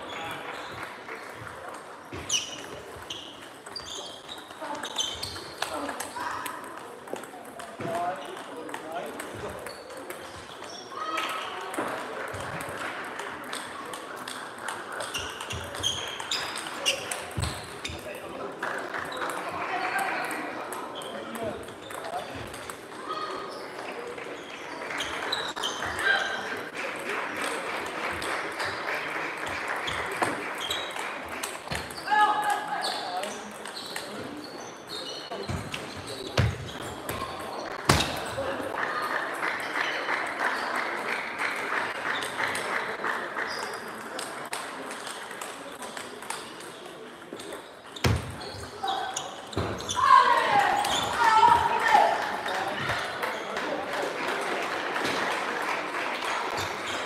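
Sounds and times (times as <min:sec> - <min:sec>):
murmur of voices: 0:00.0 - 0:57.0.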